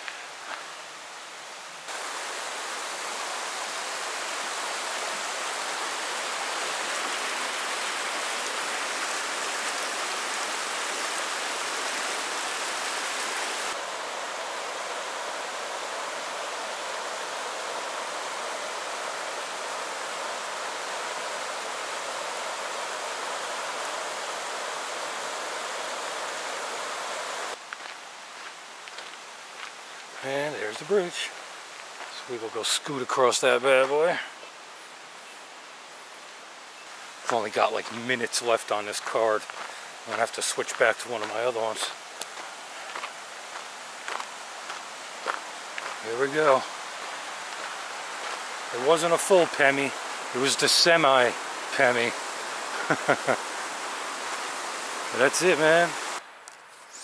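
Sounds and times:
river rushing over rocks: 0.0 - 27.9, 35.6 - 56.2.

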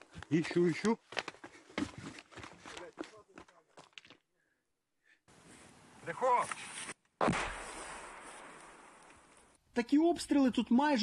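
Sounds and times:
mortar explosion: 7.2 - 9.3.

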